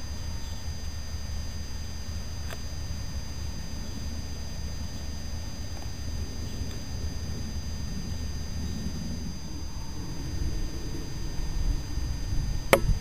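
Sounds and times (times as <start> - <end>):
low rumbling background noise: 0.0 - 13.0.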